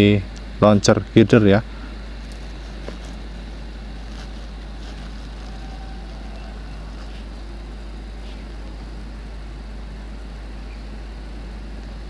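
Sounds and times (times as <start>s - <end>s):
outdoor low rumble and hiss: 0.0s - 12.0s.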